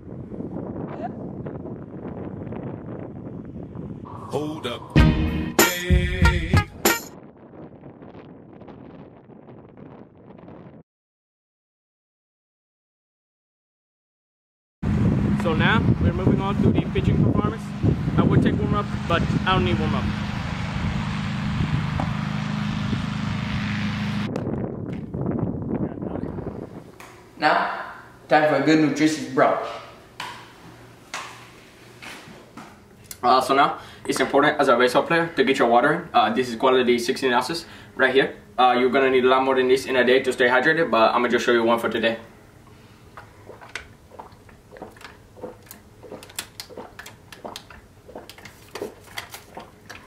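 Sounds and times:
wind noise on microphone: 0.0 - 10.8, 14.8 - 27.0, 43.3 - 50.0.

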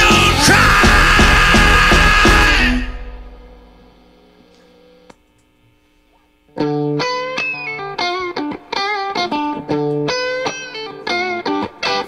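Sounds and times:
live rock band playing: 0.0 - 3.3.

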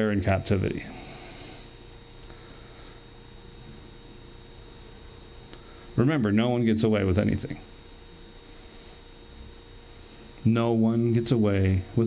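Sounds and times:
faint low hum and hiss: 0.0 - 12.0.

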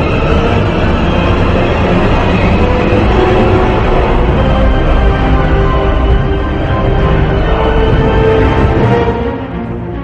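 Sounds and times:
loud continuous rumbling: 0.0 - 10.0
sustained droning tones: 0.0 - 10.0.

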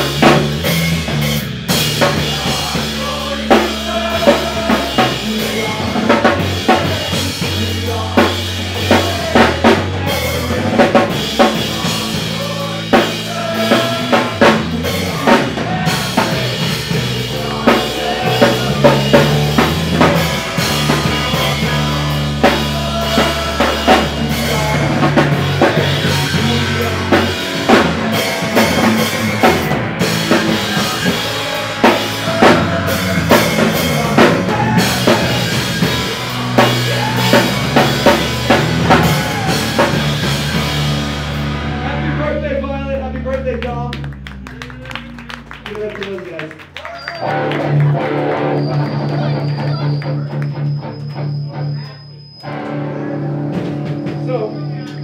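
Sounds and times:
pounding drum kit: 0.0 - 46.5, 53.2 - 55.0
hardcore punk band playing: 0.0 - 55.0.

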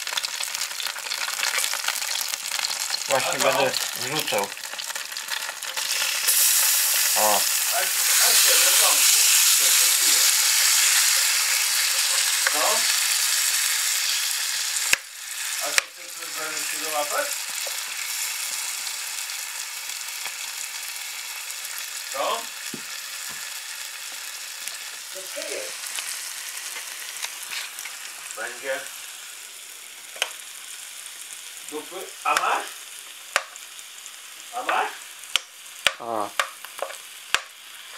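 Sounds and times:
cutlet sizzling in a pan: 0.0 - 37.9.

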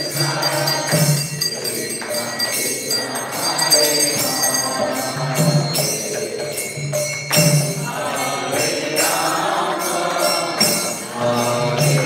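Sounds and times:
voices chanting together: 0.0 - 12.0.

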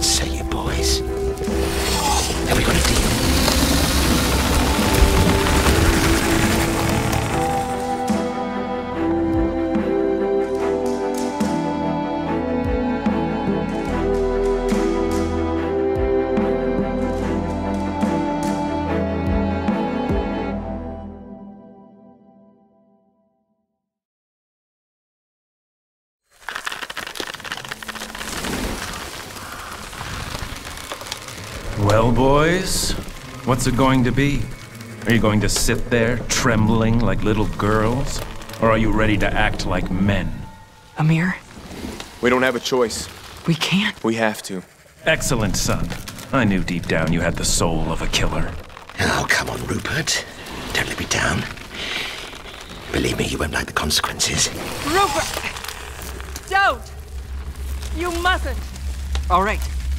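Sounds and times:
dense crackling patter: 0.0 - 8.2, 26.3 - 59.9
dramatic orchestral score: 0.0 - 21.6, 28.2 - 59.9.

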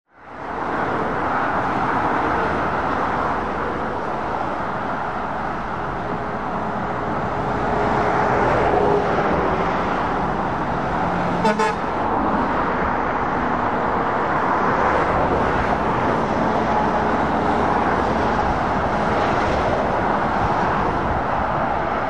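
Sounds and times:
road traffic tyres and engines: 0.1 - 22.0
truck approaching: 0.3 - 22.0.

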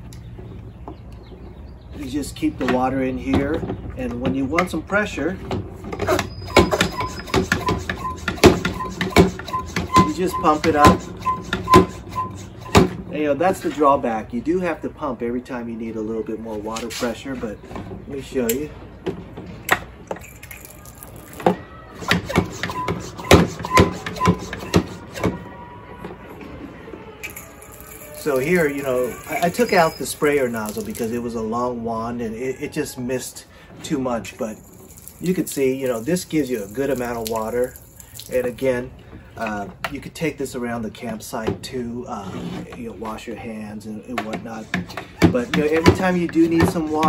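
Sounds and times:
pump squeaking: 2.0 - 13.9, 19.6 - 25.6, 27.2 - 31.5, 34.4 - 38.7, 45.2 - 47.0
water spraying from hose: 27.3 - 31.2, 34.7 - 38.6
sprayer pump knocks: 44.2 - 47.0.

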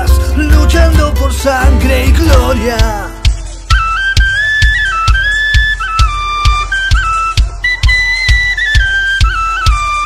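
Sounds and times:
heavy kick drum beat: 0.0 - 4.4
high flute-like melody: 0.0 - 10.0.

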